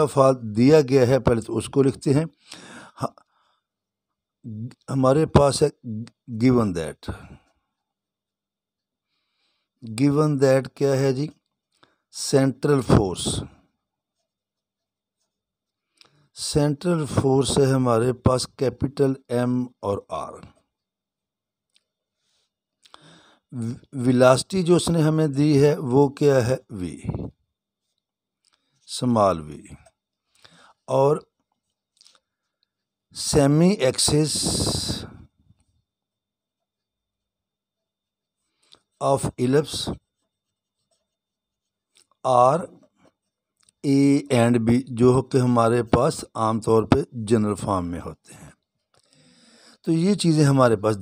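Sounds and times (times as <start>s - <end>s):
ballpoint pen scratching on paper: 39.6s - 42.0s.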